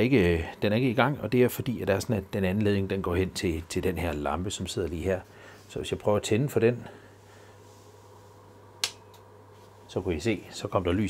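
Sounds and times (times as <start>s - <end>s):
faint steady hum: 0.0s - 11.0s
switch click: 8.8s - 9.3s.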